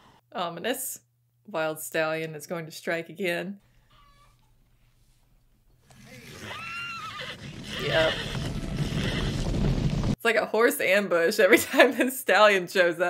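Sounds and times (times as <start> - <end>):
horse whinnying: 3.8 - 4.6, 5.8 - 9.7
galloping hooves rumble: 6.7 - 10.2.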